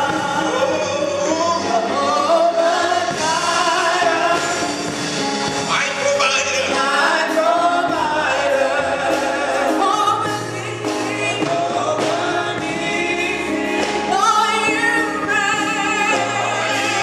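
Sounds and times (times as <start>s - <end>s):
gospel choir singing: 0.0s - 17.0s
instrumental accompaniment: 0.0s - 17.0s.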